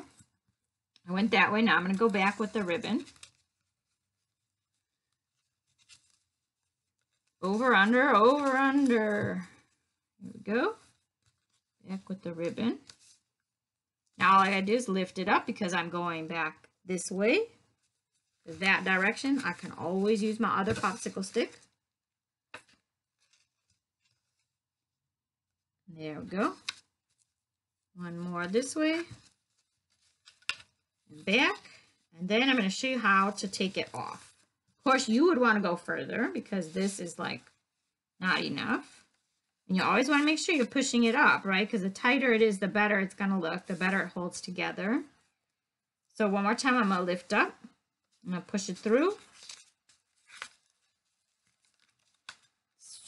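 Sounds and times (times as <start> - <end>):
faint handling sounds: 0.0 - 21.8, 22.6 - 24.6, 26.3 - 41.4, 43.2 - 53.0
faint ribbon rustle: 0.0 - 21.9, 22.6 - 24.6, 26.2 - 53.0.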